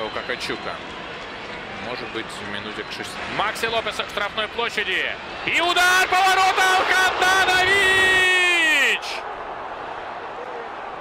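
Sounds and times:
man's long drawn-out shout: 0:05.8 - 0:09.0.

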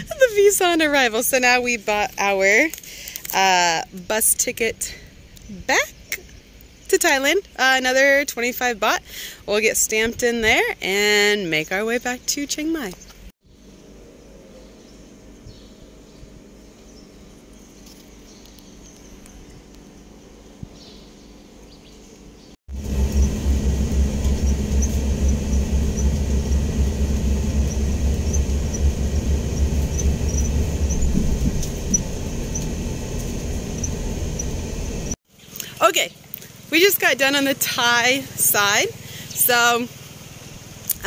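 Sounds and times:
bus engine and road rumble: 0:00.0 - 0:03.7, 0:21.8 - 0:36.7.

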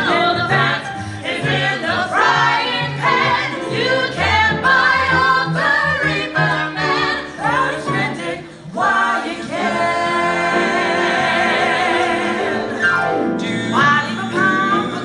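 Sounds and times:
mixed choir singing in harmony: 0:00.0 - 0:15.0.

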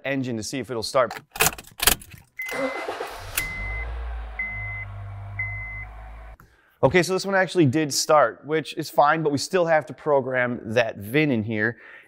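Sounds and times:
car engine cranking and idling: 0:01.2 - 0:06.4.

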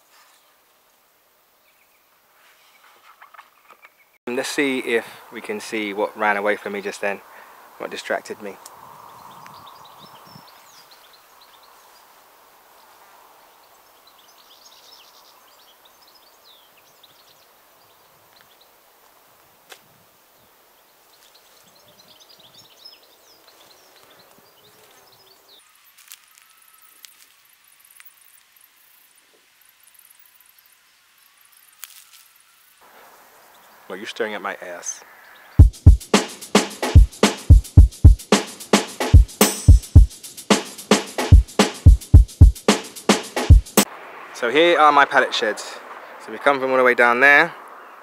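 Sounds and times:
light wind: 0:00.0 - 0:26.7, 0:43.8 - 0:48.0
small birds chirping: 0:05.2 - 0:18.9, 0:20.3 - 0:44.5.

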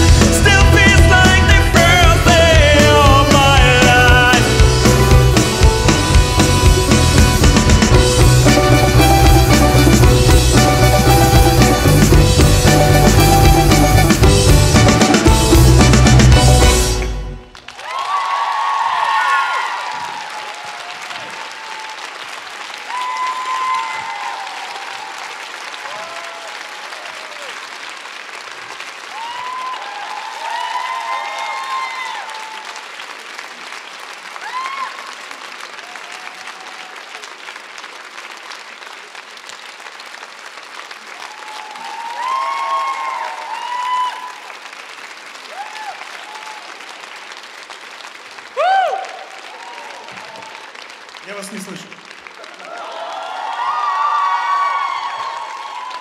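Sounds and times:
audience applauding: 0:00.0 - 0:56.0
loud rising shout: 0:17.8 - 0:22.0, 0:41.3 - 0:44.5, 0:48.6 - 0:50.6, 0:52.6 - 0:56.0.

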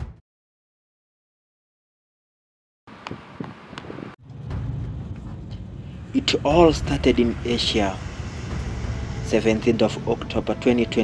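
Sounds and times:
car interior rumble: 0:02.9 - 0:11.0
wind noise: 0:02.9 - 0:11.0.

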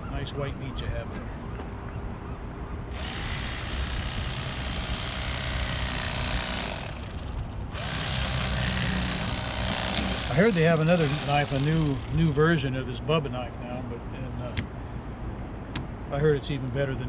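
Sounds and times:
electric fillet knife running: 0:03.0 - 0:12.3.

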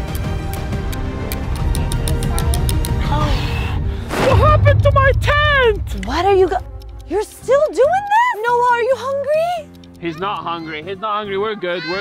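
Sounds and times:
music with fast ticking beat: 0:00.0 - 0:03.0, 0:04.7 - 0:11.5.

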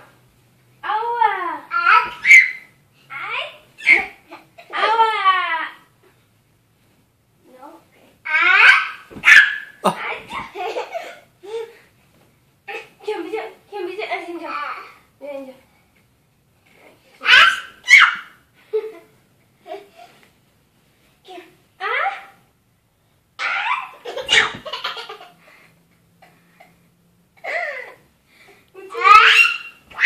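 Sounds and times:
young child squealing: 0:01.9 - 0:02.7, 0:08.4 - 0:10.0, 0:17.2 - 0:18.4, 0:28.9 - 0:30.0
child shrieking: 0:28.9 - 0:30.0
young child yelling: 0:28.9 - 0:30.0.

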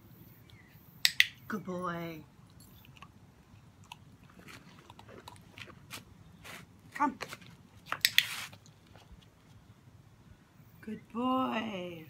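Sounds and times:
short rustle: 0:05.9 - 0:09.6.

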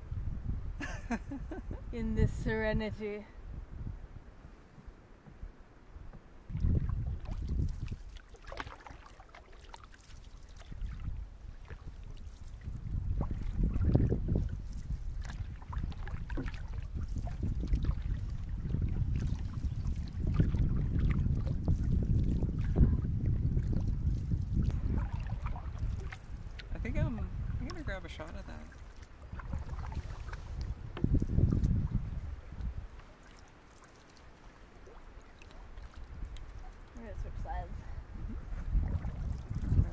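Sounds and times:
wind buffeting microphone: 0:00.0 - 0:08.1, 0:10.6 - 0:33.0, 0:36.0 - 0:39.9
canoe paddle splashing: 0:06.0 - 0:39.9.

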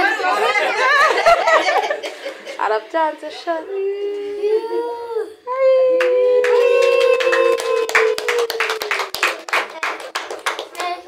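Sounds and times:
hands clapping in rhythm: 0:06.0 - 0:11.0.

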